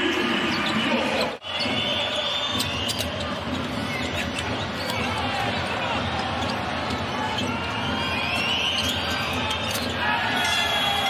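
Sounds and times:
arena crowd noise: 0:00.0 - 0:11.0
sneakers squeaking: 0:00.0 - 0:11.0.

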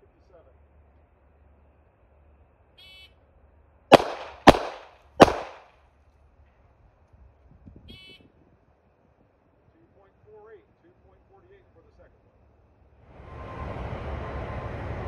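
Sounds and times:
gunshots: 0:03.9 - 0:05.7.

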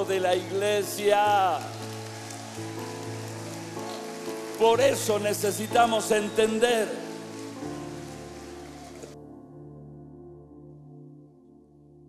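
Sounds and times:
soft keyboard chords: 0:00.0 - 0:12.0.

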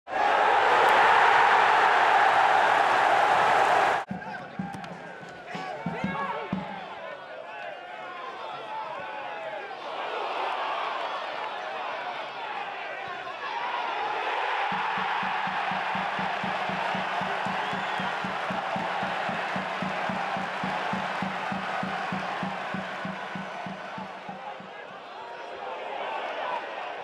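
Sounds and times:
stadium crowd shouting and chanting: 0:00.1 - 0:27.0.

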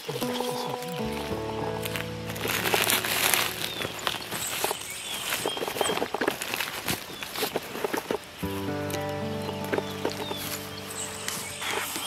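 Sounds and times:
music of long held chords: 0:00.0 - 0:06.5, 0:08.4 - 0:12.0
dry leaves and twigs crackling: 0:01.1 - 0:08.4.

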